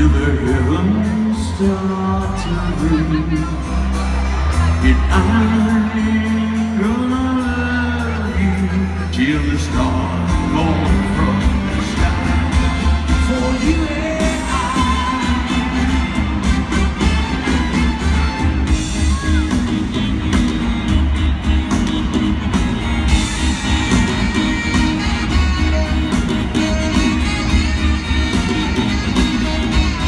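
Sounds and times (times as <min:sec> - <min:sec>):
person singing: 0:00.0 - 0:16.2
live rock band playing: 0:00.0 - 0:30.0.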